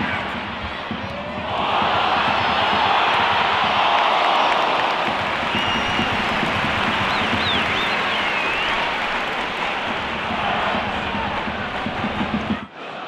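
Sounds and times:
stadium crowd cheering: 0.0 - 13.0
shrill whistles: 5.4 - 9.1.

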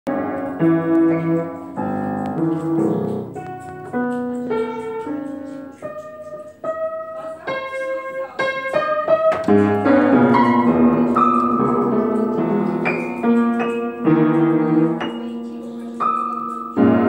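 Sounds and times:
upright piano playing: 0.1 - 17.0.

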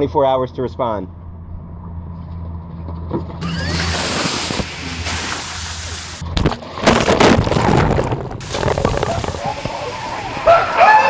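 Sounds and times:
water splashing down: 3.4 - 6.4, 7.5 - 11.0
people whooping and shouting: 9.1 - 11.0.

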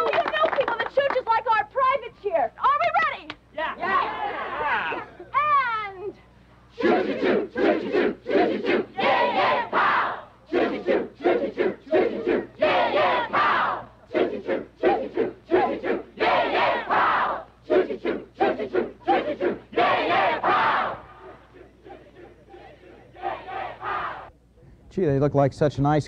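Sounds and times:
group chanting and shouting: 2.8 - 24.3.

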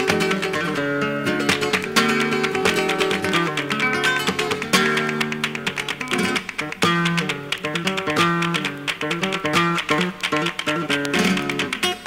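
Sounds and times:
flamenco acoustic guitar: 0.0 - 12.0.

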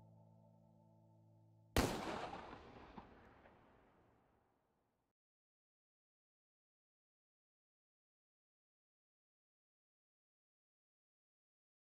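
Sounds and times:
soft sustained music chord: 0.0 - 1.8
handgun shot with echo: 1.8 - 3.2.

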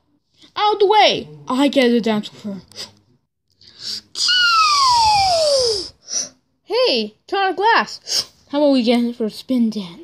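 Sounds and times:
child making falling squeal: 4.2 - 6.0.

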